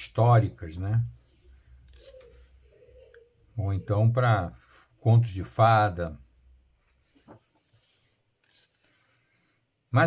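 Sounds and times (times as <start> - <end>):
hands rubbing paper pages: 0.0 - 2.7, 6.8 - 9.2.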